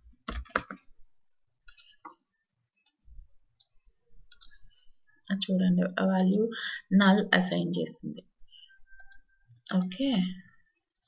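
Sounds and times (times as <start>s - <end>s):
computer mouse and keyboard clicks: 0.1s - 0.9s, 1.6s - 2.2s, 3.6s - 4.6s, 9.0s - 10.0s.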